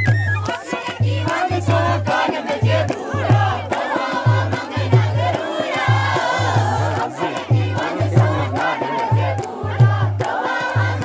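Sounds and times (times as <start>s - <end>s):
crowd shouting and singing along: 0.0s - 11.0s.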